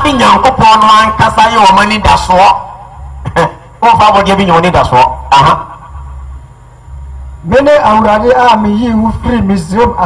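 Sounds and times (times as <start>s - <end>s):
man speaking through loudspeaker: 0.0s - 5.8s, 7.4s - 10.0s
low electrical hum: 0.0s - 10.0s.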